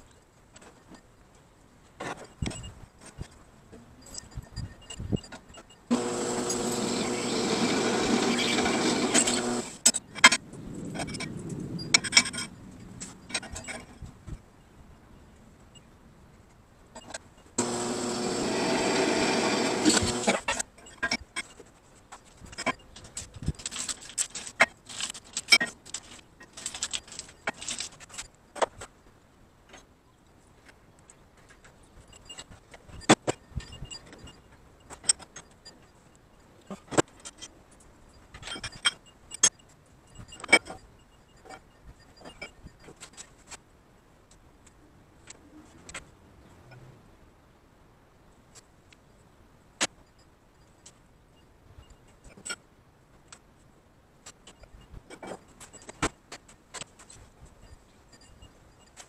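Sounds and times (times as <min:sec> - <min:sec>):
metallic clicks and clinks: 0:02.0 - 0:06.7, 0:08.4 - 0:14.4, 0:19.9 - 0:28.9, 0:31.0 - 0:43.6
drill press drilling steel: 0:05.9 - 0:09.8, 0:17.6 - 0:20.6.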